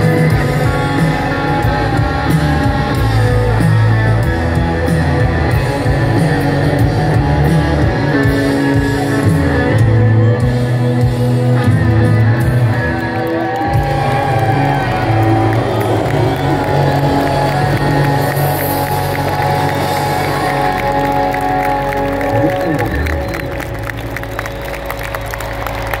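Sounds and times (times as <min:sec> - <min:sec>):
crowd cheering and applauding: 0:00.0 - 0:26.0.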